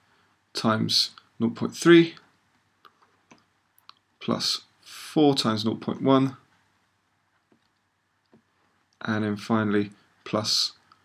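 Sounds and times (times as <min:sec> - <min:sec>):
person speaking: 0:00.5 - 0:06.6, 0:08.4 - 0:11.0.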